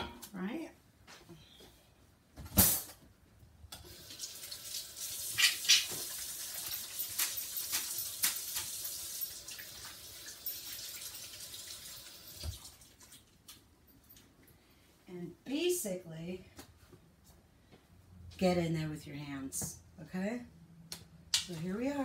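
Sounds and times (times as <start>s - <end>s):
faucet running into sink: 3.8s - 13.2s.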